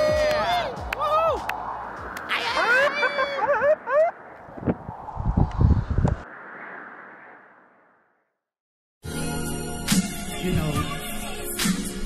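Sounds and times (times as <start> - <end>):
people whooping and calling out: 0.0 - 1.6, 2.3 - 4.1.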